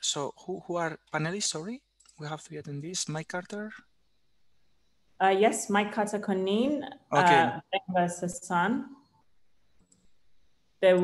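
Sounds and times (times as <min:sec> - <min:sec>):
woman speaking: 0:05.2 - 0:09.0.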